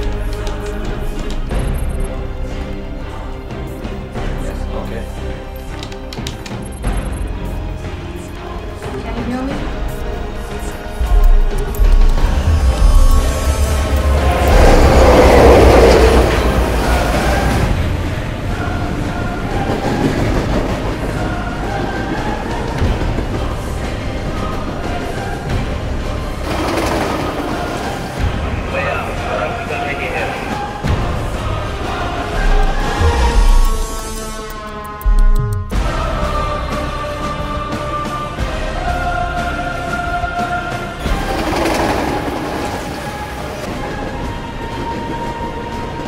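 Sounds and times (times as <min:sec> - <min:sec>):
train wheels rumbling on rails: 0:11.0 - 0:34.6, 0:39.4 - 0:46.0.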